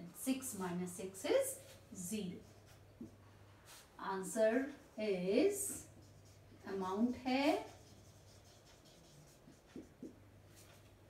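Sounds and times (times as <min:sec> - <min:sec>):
low room hum: 0:00.0 - 0:11.0
marker on whiteboard: 0:00.3 - 0:10.9.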